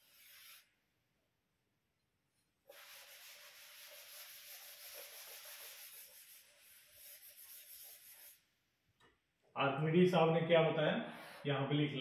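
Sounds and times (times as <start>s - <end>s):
duster rubbing chalkboard: 0.0s - 0.7s, 2.7s - 8.5s.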